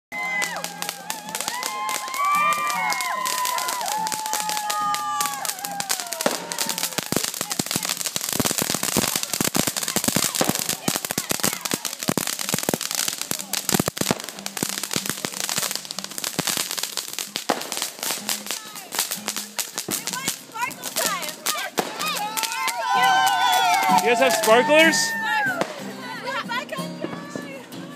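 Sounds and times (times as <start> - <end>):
firework crackling pops: 0.2 - 27.9.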